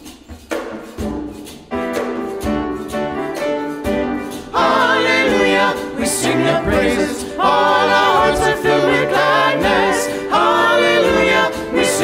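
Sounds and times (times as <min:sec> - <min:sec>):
choir singing sacred music: 0:04.2 - 0:12.0.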